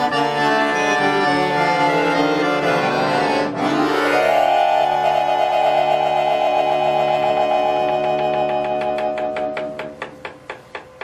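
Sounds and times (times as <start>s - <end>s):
accordion holding a chord: 0.0s - 9.9s.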